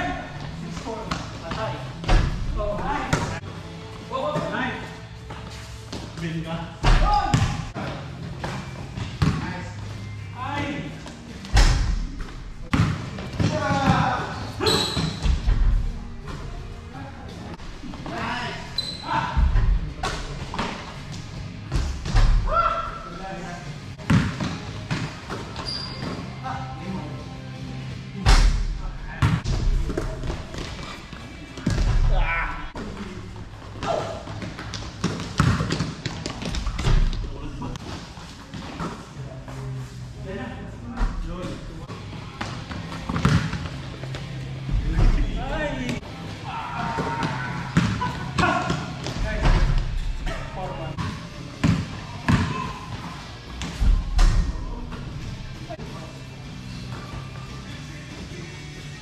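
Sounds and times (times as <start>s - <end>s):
basketball bouncing on court: 6.8s - 7.6s, 33.8s - 37.2s, 42.4s - 43.7s
players' voices: 26.2s - 59.0s.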